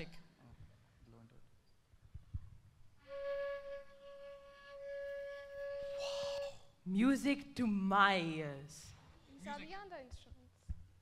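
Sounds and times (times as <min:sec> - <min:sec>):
flute playing long note: 0:03.0 - 0:06.7.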